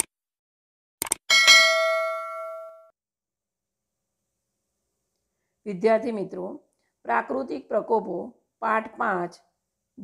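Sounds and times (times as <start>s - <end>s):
notification bell ding: 1.3s - 2.9s.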